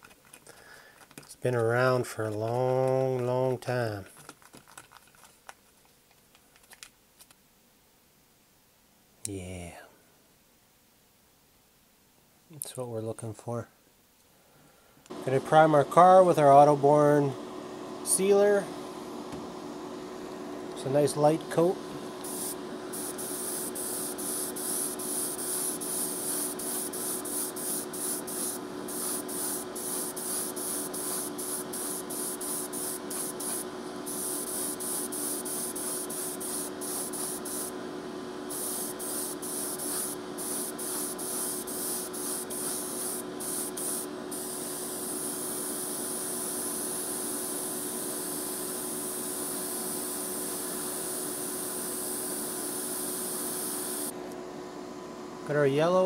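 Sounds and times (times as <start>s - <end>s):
steady hum: 15.0s - 56.0s
airbrush spraying hiss: 22.2s - 37.7s, 38.5s - 54.1s.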